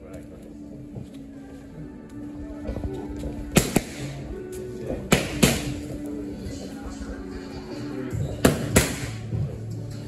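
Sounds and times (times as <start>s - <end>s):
background music: 0.0s - 10.0s
boxing gloves punching focus mitts: 5.1s - 6.0s, 8.4s - 9.4s.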